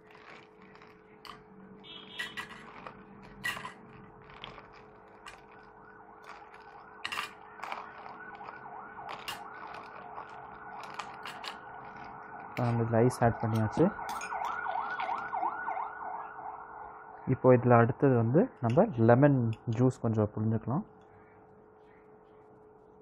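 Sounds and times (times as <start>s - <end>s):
ice cubes clinking into jug: 2.1s - 12.8s
wavering siren-like tone: 5.3s - 17.5s.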